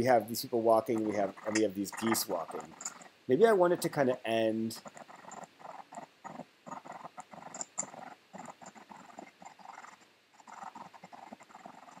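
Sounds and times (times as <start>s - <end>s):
stuttering audio scrubbing snippets: 0.1s - 12.0s.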